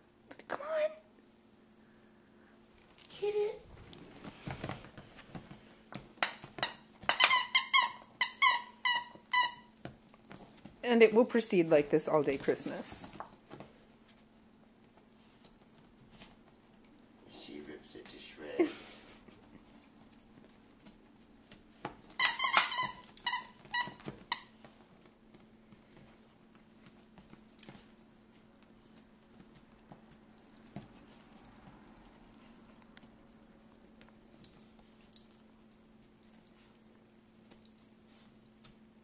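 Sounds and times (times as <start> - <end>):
squeaky toy squeaking: 6.2 - 9.7, 22.2 - 24.5.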